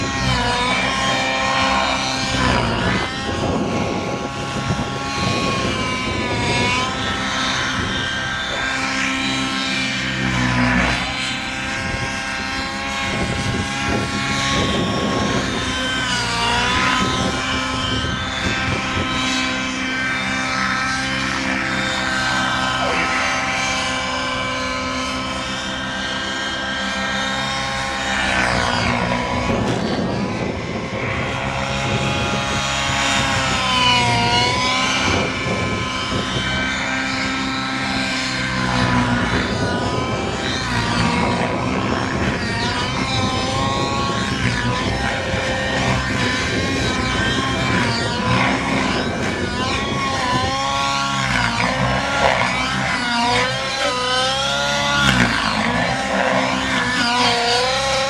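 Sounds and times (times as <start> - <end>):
model aircraft engine passing: 0.0 - 58.0.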